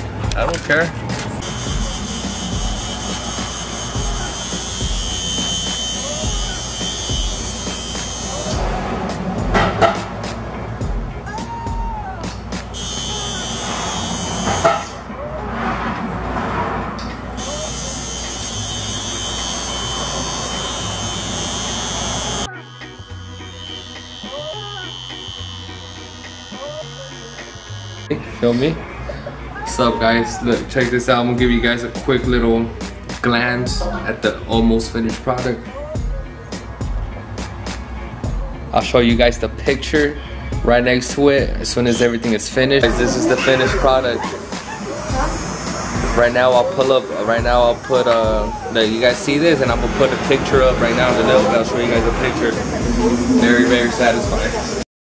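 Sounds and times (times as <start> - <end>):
background music with steady beat: 0.0 - 54.8
electric tattoo machine buzzing: 1.4 - 8.7, 12.6 - 15.0, 17.2 - 28.1, 42.8 - 48.9.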